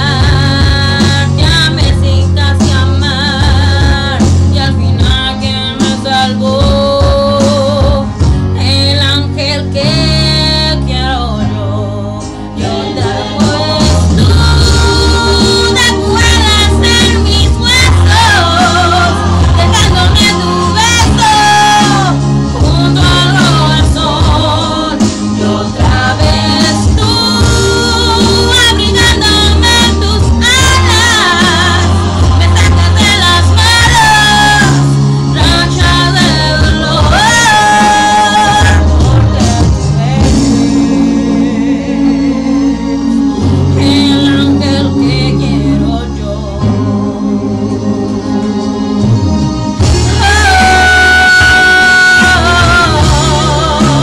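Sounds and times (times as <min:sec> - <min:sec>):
woman singing slow song: 0:00.0 - 0:49.0, 0:50.0 - 0:54.0
guitar backing: 0:00.0 - 0:54.0.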